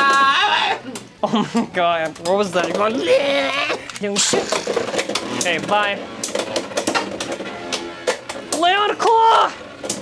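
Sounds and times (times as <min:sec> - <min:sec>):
spinning tops clashing and rattling: 0:04.1 - 0:05.6.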